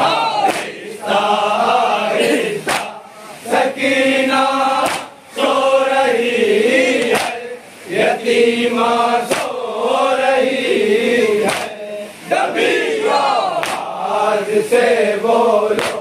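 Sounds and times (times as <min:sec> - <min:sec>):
men chanting in unison: 0:00.0 - 0:16.0
hands slapping chests: 0:00.4 - 0:00.8, 0:02.6 - 0:03.0, 0:04.8 - 0:05.1, 0:07.0 - 0:07.4, 0:09.3 - 0:09.6, 0:11.4 - 0:11.8, 0:13.6 - 0:13.9, 0:15.7 - 0:16.0.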